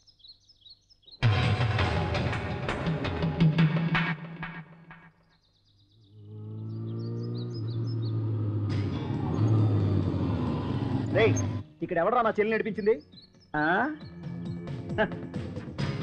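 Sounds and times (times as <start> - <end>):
motorcycle engine revving: 6.6 - 11.6.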